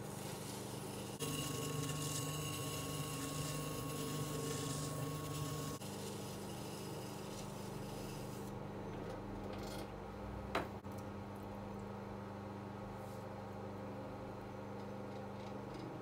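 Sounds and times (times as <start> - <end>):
buzzy motor whine: 0.0 - 8.5
potter's wheel motor hum: 0.0 - 16.0.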